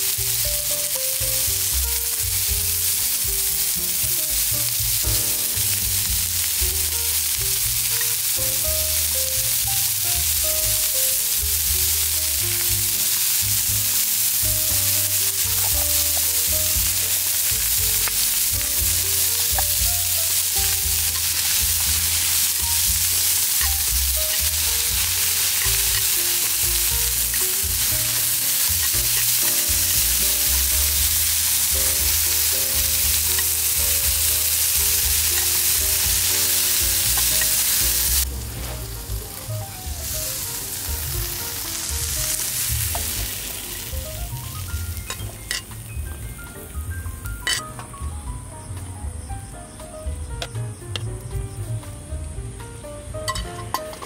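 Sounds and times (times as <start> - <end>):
food sizzling in a frying pan: 0.0 - 51.8, 53.0 - 54.0
soft background music: 0.0 - 54.0
metal tongs stirring: 5.5 - 38.2, 45.0 - 45.7, 53.3 - 54.0.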